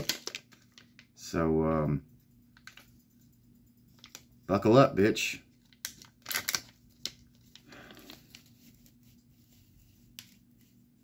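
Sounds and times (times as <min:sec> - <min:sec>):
plastic wrapper crinkling: 0:00.0 - 0:01.1, 0:05.5 - 0:09.2.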